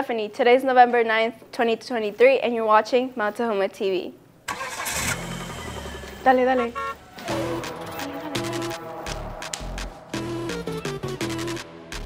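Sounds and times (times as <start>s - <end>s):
engine starting and idling: 4.5s - 7.7s.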